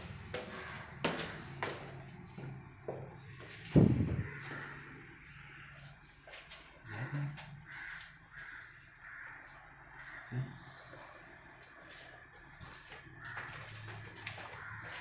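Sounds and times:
faint harsh bird calls: 0:03.4 - 0:12.3.

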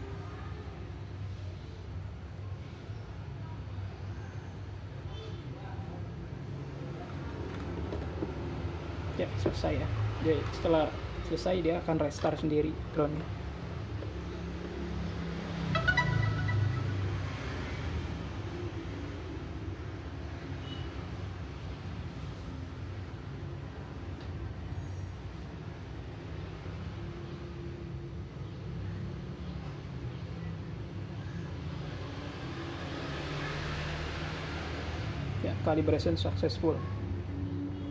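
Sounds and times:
electronic startup chime: 0:15.6 - 0:17.9.

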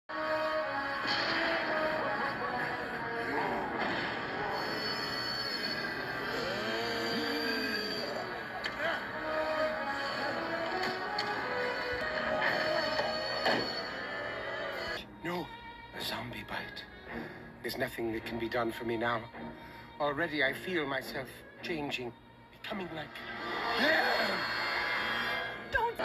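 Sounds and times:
cartoon soundtrack on television: 0:00.1 - 0:26.0.

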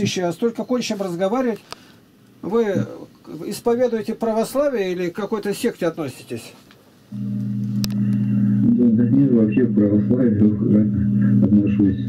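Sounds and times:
steady low hum: 0:06.9 - 0:12.0.

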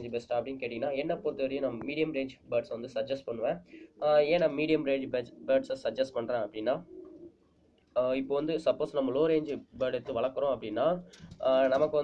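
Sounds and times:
man speaking: 0:00.0 - 0:06.9, 0:08.0 - 0:12.0
pigeon cooing: 0:06.5 - 0:07.6.

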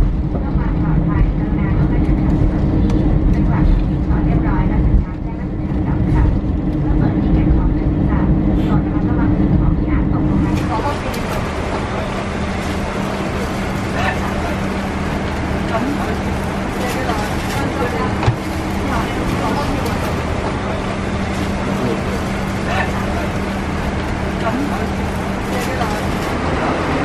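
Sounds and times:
jet engine rumble: 0:00.0 - 0:27.0.

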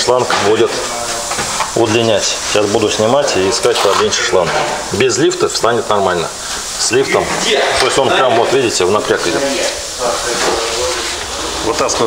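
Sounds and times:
background hiss: 0:00.0 - 0:12.0
person speaking: 0:00.0 - 0:12.0.

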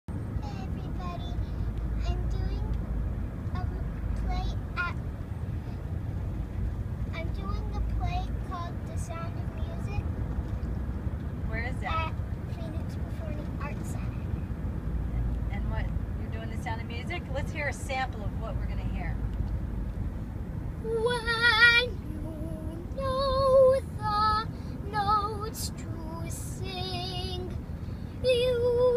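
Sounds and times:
car cabin rumble: 0:00.1 - 0:28.9
young girl's voice: 0:00.4 - 0:02.8, 0:03.5 - 0:05.8, 0:07.1 - 0:10.1, 0:11.8 - 0:14.3.

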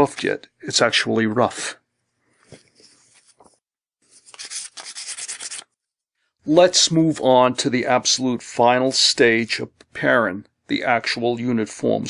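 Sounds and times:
scratchy rubbing on paper: 0:02.6 - 0:05.7.

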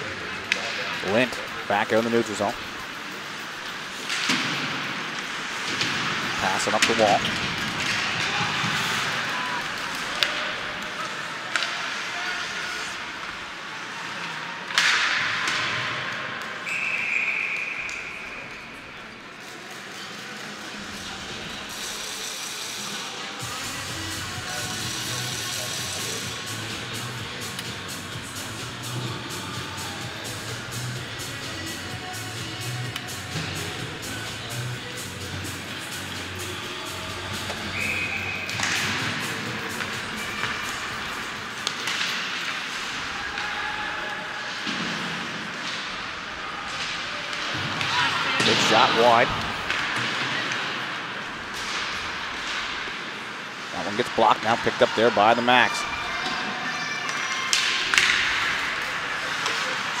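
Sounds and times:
crowd chatter: 0:00.0 - 1:00.0
referee's whistle blast: 0:16.6 - 0:18.4, 0:37.6 - 0:38.5.

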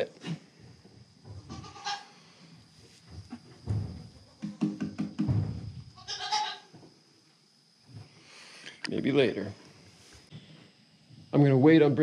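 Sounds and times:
goat bleating: 0:01.5 - 0:02.1, 0:06.0 - 0:06.7.

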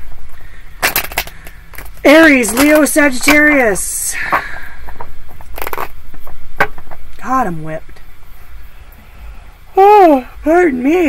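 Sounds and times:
cards being shuffled: 0:05.4 - 0:06.0.

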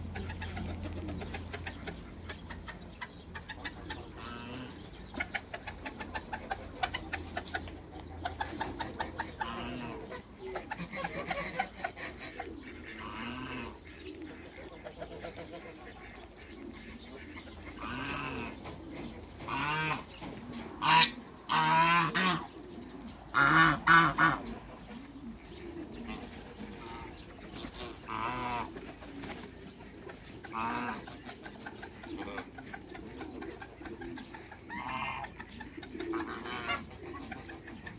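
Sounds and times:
soft poultry calls: 0:00.0 - 0:37.9
geese honking: 0:03.5 - 0:07.2, 0:08.8 - 0:20.2, 0:20.8 - 0:22.6, 0:23.3 - 0:24.9, 0:25.6 - 0:29.0, 0:29.6 - 0:37.9.

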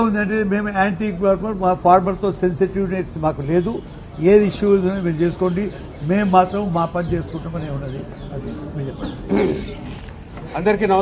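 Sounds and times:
crowd of men's voices: 0:00.0 - 0:11.0
man's rough call: 0:09.3 - 0:09.8.

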